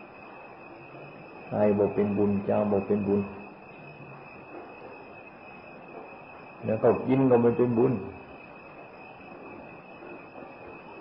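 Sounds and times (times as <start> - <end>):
faint high-pitched whine: 0.0 - 11.0
recording hiss: 0.0 - 11.0.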